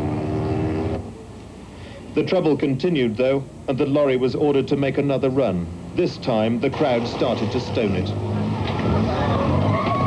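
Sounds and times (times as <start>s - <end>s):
faint background hiss: 0.0s - 8.7s.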